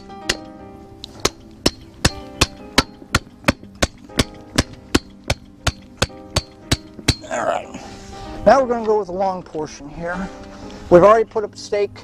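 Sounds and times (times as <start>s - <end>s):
hammer driving wooden stake: 0.0s - 7.3s.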